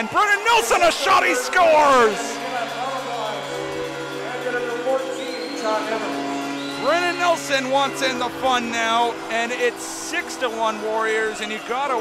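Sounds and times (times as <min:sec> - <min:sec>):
arena music: 0:00.0 - 0:12.0.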